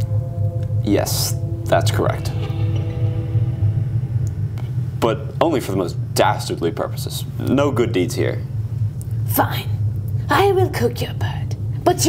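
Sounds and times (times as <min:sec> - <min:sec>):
faint held tones: 0:00.0 - 0:06.1
steady low rumble: 0:00.0 - 0:12.0.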